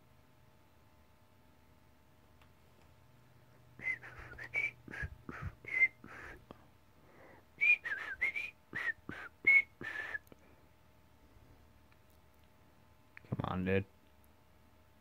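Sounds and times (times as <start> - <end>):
person whistling chirpy notes: 3.8 - 6.4, 7.6 - 10.2.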